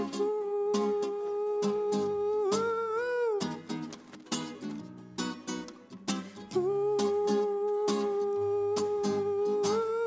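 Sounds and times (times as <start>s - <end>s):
strummed classical guitar: 0.0s - 10.0s.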